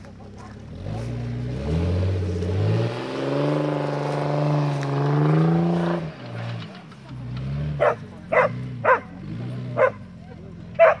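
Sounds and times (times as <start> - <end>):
car engine revving: 0.0 - 11.0
dog barking: 7.8 - 9.2, 9.8 - 10.0, 10.8 - 11.0.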